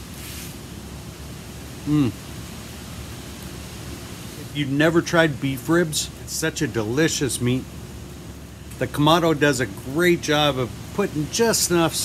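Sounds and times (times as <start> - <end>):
steady hiss: 0.0 - 12.0
man humming appreciatively: 1.8 - 2.3.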